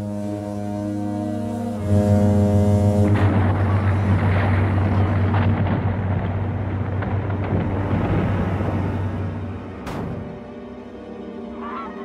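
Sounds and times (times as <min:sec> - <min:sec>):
dark orchestral music: 0:00.0 - 0:12.0.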